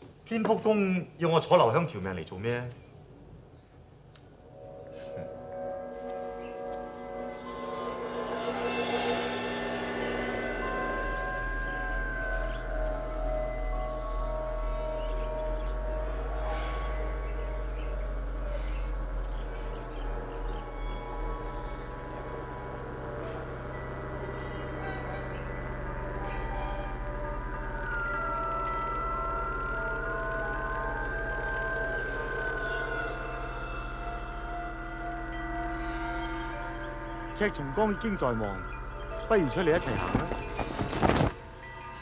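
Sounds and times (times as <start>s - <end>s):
sustained music chords: 4.2s - 42.0s
high bending tone: 4.4s - 42.0s.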